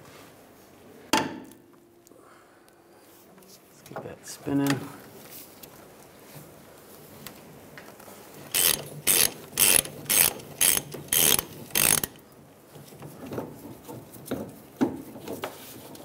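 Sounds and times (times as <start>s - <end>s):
hand ratchet clicking: 8.5s - 12.2s.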